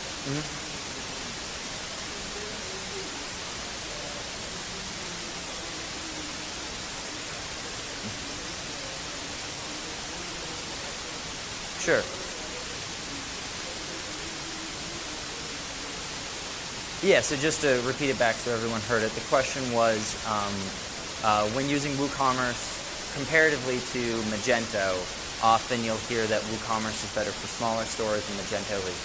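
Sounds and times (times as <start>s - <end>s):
faint distant speech: 0.0s - 29.0s
recording hiss: 0.0s - 29.0s.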